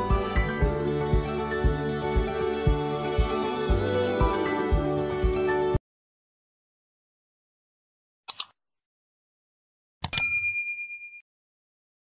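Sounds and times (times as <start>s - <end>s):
mouse click: 8.3s - 8.6s
bright bell ding: 10.0s - 11.2s.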